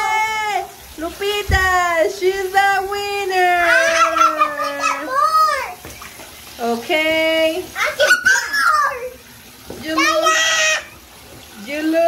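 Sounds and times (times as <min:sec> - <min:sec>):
splash or knock: 0:01.4 - 0:01.9
child squealing: 0:03.7 - 0:05.8, 0:08.0 - 0:09.1, 0:10.0 - 0:10.9.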